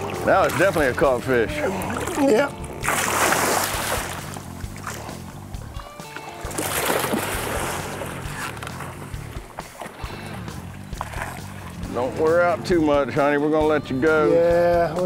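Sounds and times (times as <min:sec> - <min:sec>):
fish splashing at water surface: 0:00.0 - 0:05.2, 0:06.0 - 0:11.9
background music: 0:00.0 - 0:15.0.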